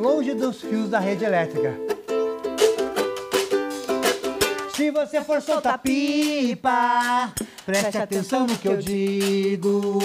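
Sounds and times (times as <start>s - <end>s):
ukulele strumming: 0.0s - 10.0s.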